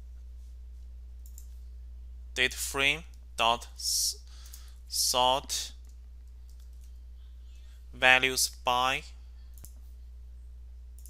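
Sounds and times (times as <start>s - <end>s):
low electrical hum: 0.0s - 11.0s
computer keys clicking: 1.2s - 1.6s, 5.8s - 7.0s, 9.5s - 9.8s.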